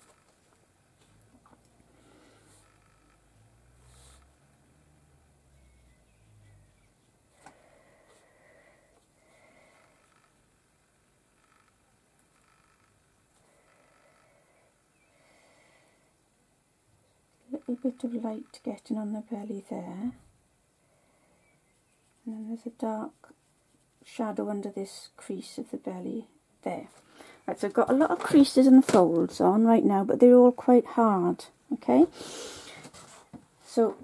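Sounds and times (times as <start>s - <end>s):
soft breaths: 0.0s - 11.8s, 12.4s - 17.5s, 19.9s - 22.3s, 26.9s - 27.5s, 32.1s - 33.8s.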